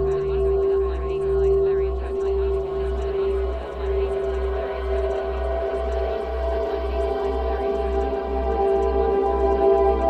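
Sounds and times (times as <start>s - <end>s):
droning held tones: 0.0s - 10.0s
pulsing deep low hum: 0.0s - 10.0s.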